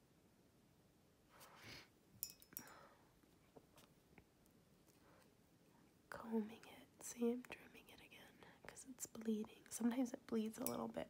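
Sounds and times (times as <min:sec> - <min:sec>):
soft breath: 0:01.3 - 0:03.2, 0:08.1 - 0:08.8.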